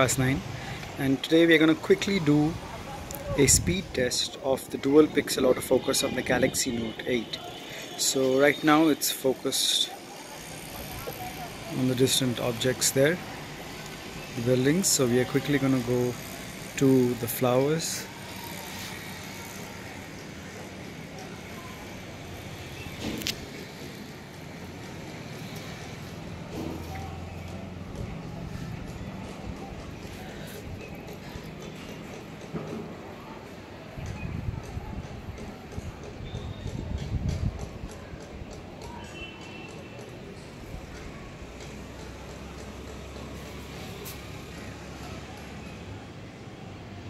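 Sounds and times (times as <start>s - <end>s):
low traffic hum: 0.0s - 47.0s.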